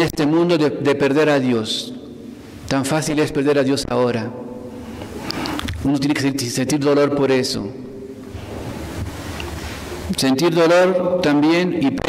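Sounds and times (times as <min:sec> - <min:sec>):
person speaking: 0:02.6 - 0:07.9, 0:10.0 - 0:12.0
steady rushing noise: 0:08.2 - 0:10.1.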